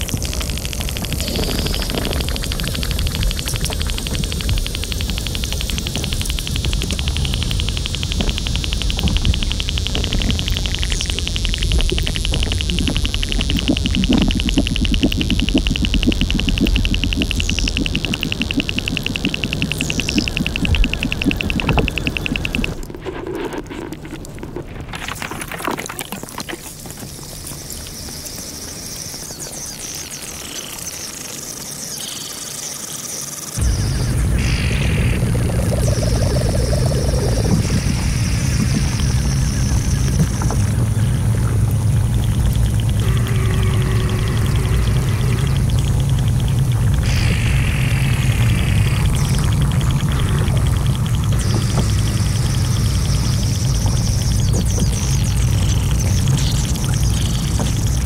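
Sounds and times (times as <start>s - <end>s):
low underwater rumble: 0.0s - 25.4s, 33.6s - 58.0s
ice clicks and pops: 0.0s - 28.5s.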